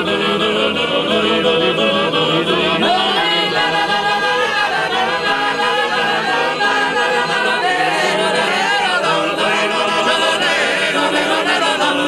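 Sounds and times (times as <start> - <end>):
male choir singing a cappella: 0.0 - 12.0.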